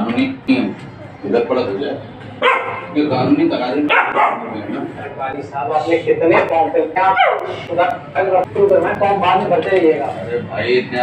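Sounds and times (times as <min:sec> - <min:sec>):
puppy yapping: 0:02.4 - 0:03.0, 0:03.8 - 0:04.6.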